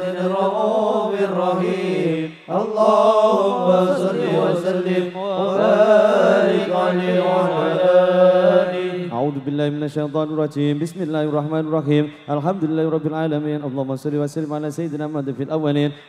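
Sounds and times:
men chanting devotional verses: 0.0 - 16.0.

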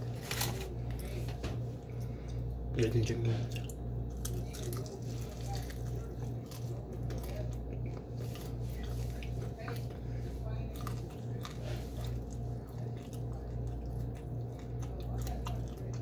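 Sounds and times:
chewing and crunching fried food: 0.0 - 16.0
pulsing low hum: 0.0 - 16.0.

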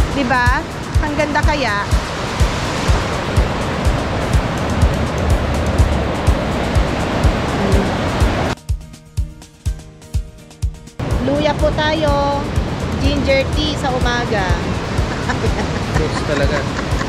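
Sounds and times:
river rapids rushing: 0.0 - 8.6, 12.5 - 17.0
background music with steady beat: 0.0 - 17.0.

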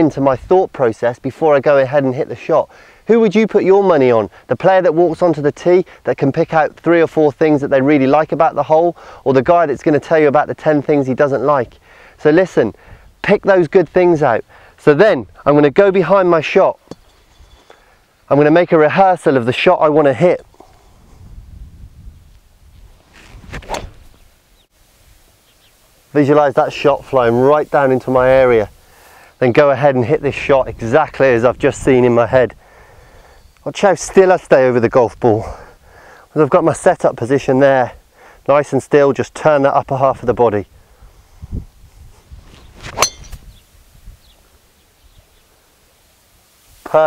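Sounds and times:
golf club striking ball: 16.8 - 17.4, 23.6 - 24.1, 42.8 - 43.5
golf club swishing whoosh: 23.0 - 24.2, 42.4 - 43.6.

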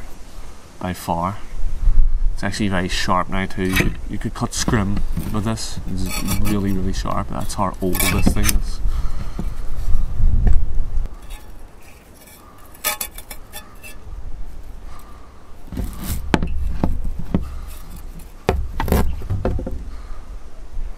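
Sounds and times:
low handling rumble: 1.6 - 12.2
trowel cutting mesh tape: 4.7 - 8.4, 11.2 - 14.0, 15.7 - 16.6.

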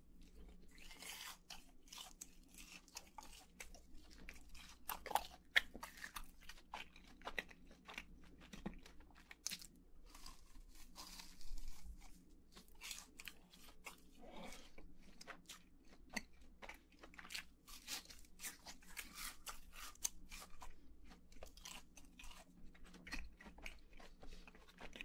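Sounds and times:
chewing crispy fried food: 0.0 - 25.0.

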